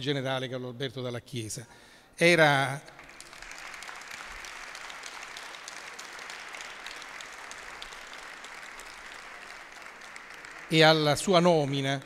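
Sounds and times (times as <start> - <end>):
audience applause: 3.0 - 12.0.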